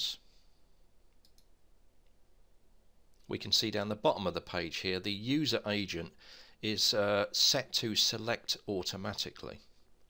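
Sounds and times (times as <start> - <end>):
computer mouse clicks: 1.1 - 1.5.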